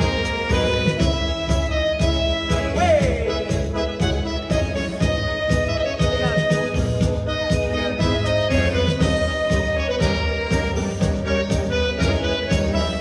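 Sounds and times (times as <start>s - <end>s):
accordion-led tango music: 0.0s - 13.0s.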